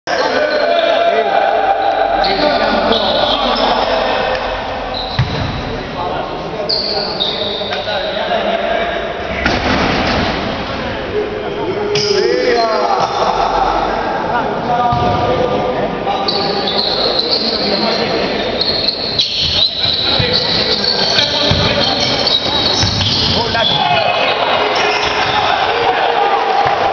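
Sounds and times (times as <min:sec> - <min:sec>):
spectators' voices: 0:00.1 - 0:26.9
basketball bouncing on hardwood: 0:05.2 - 0:05.5.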